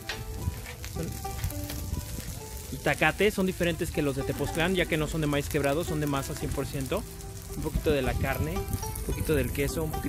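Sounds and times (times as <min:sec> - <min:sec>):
food sizzling on a steel griddle: 0:00.0 - 0:10.0.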